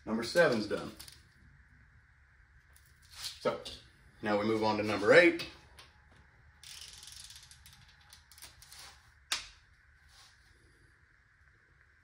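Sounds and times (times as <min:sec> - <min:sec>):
torque wrench ratchet clicking: 0:06.6 - 0:08.4.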